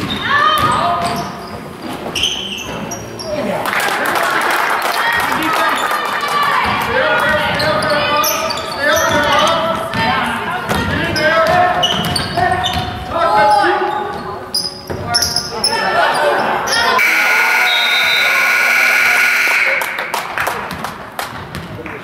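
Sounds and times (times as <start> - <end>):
sneaker squeaks: 0.0 - 3.5, 7.5 - 9.7, 11.1 - 17.1
voices shouting: 15.6 - 19.8
scoreboard buzzer: 17.0 - 19.9.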